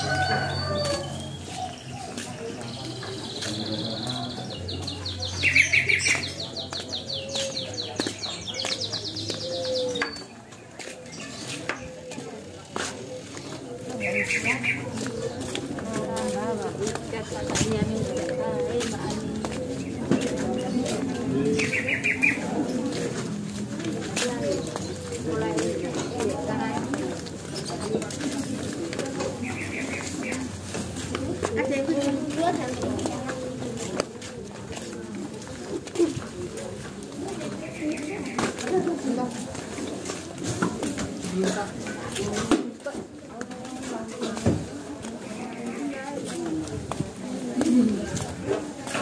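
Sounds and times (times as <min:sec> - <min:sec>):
crowd murmur: 0:00.0 - 0:49.0
low hum of market: 0:00.0 - 0:49.0
bird calls: 0:13.3 - 0:15.4, 0:21.6 - 0:22.7, 0:29.3 - 0:30.5.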